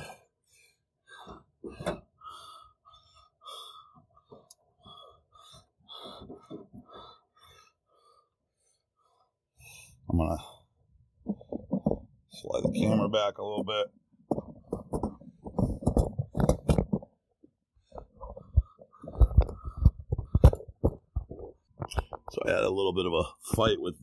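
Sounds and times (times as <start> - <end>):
clicks and rustles of handling: 13.6 - 17.2, 17.9 - 22.5.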